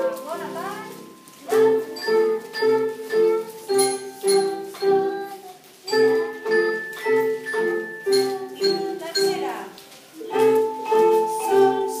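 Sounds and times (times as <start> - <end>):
children singing together: 1.5 - 9.4, 10.2 - 12.0
child's gliding vocal sound: 3.1 - 9.0.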